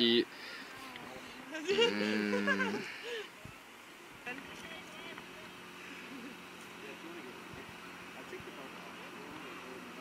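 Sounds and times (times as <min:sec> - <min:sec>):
person murmuring and humming: 0:00.0 - 0:03.3.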